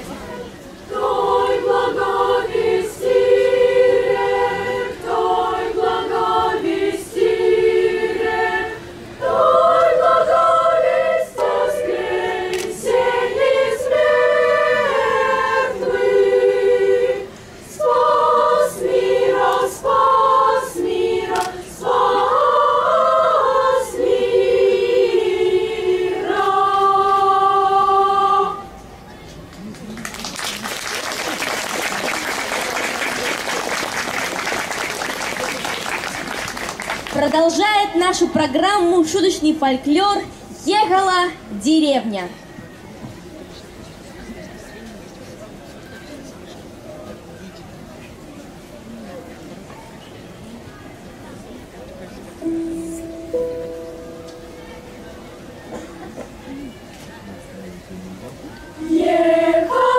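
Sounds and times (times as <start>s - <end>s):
children's choir singing: 0.0s - 28.9s, 52.3s - 56.7s, 58.3s - 59.9s
applause: 29.5s - 37.2s.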